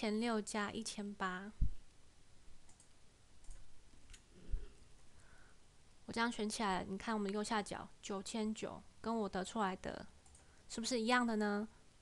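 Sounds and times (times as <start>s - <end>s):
faint computer mouse clicks: 2.6s - 4.3s, 10.2s - 10.5s.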